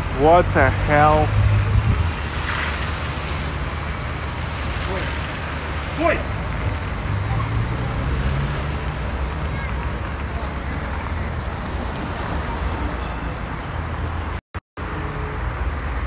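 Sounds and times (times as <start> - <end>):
passing car traffic rumble: 0.0 - 16.0.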